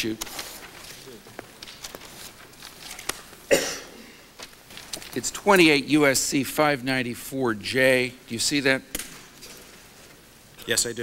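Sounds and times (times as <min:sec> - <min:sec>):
paper rustling: 0:00.0 - 0:03.5, 0:04.3 - 0:05.8.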